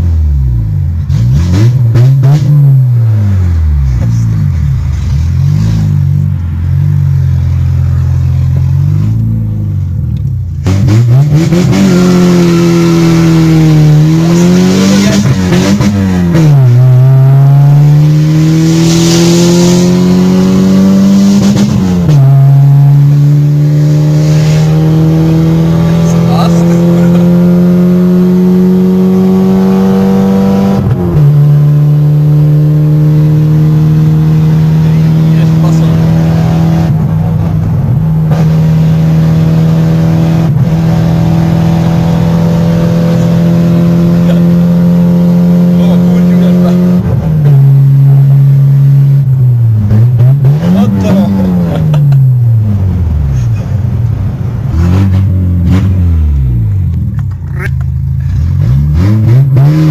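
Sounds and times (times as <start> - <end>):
car engine accelerating: 0.0 - 59.9.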